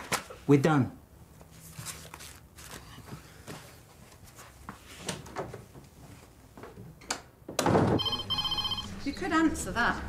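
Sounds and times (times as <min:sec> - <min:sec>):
desk telephone trilling ring: 0:08.0 - 0:08.9.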